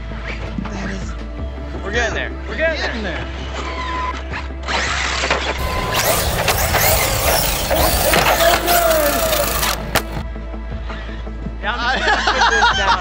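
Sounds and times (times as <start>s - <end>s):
falling whine: 5.6s - 10.2s
rc car motor whine: 5.6s - 10.2s.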